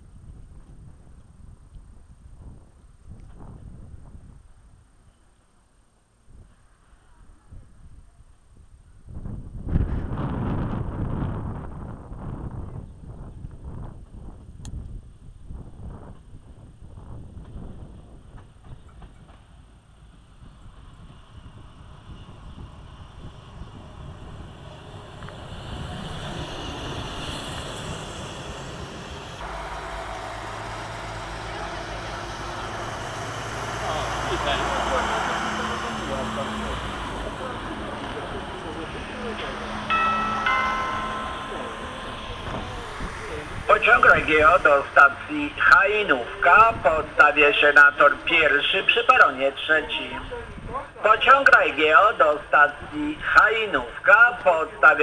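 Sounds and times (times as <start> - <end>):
wind on microphone: 0.0 - 5.0, 6.3 - 19.2, 20.3 - 28.5, 41.8 - 44.7, 50.2 - 51.0
train engine rumble: 0.0 - 55.0
station announcement: 33.8 - 55.0
short high tones: 39.8 - 43.6.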